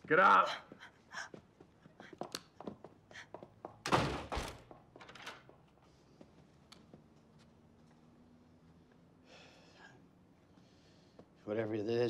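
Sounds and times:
door slamming shut: 0:03.8 - 0:05.4.

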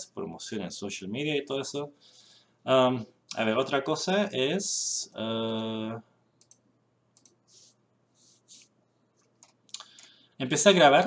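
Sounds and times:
mouse and keyboard clicking: 0:07.2 - 0:07.4
soft hissy sounds: 0:07.2 - 0:11.0.

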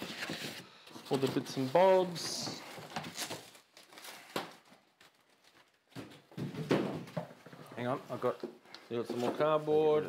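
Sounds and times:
packing foam and cardboard rustling: 0:00.0 - 0:06.2.

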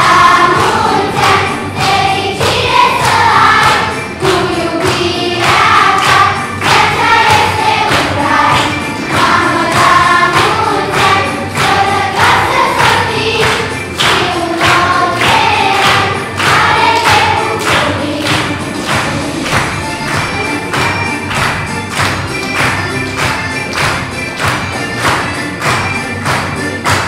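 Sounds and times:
children's choir singing: 0:00.0 - 0:27.0
steady beat accompaniment: 0:00.0 - 0:27.0.

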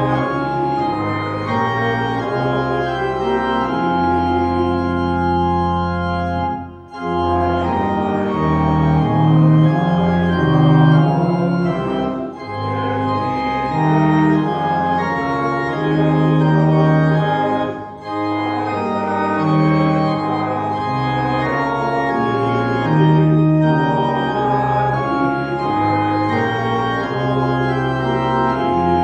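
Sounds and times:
church organ playing a hymn: 0:00.0 - 0:29.0.

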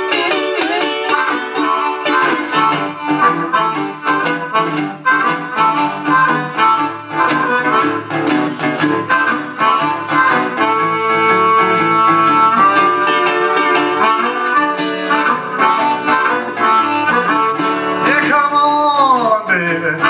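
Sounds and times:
blues harmonica: 0:00.0 - 0:20.0
resonator guitar picking: 0:00.0 - 0:20.0.

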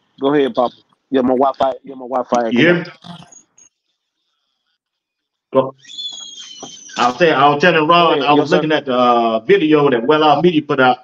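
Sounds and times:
man's voice on video call: 0:00.2 - 0:03.0, 0:05.6 - 0:05.8, 0:07.0 - 0:11.0.

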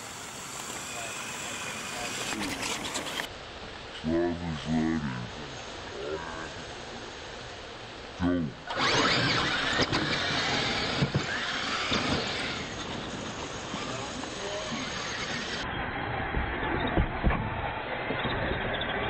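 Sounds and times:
rc truck motors whining: 0:00.0 - 0:03.3, 0:08.7 - 0:17.0
tyres scrabbling on dirt: 0:00.6 - 0:03.3, 0:08.8 - 0:15.6.

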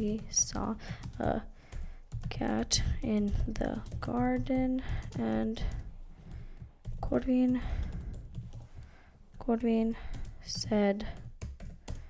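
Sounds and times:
typing on computer keyboard: 0:00.0 - 0:08.7, 0:10.0 - 0:12.0.

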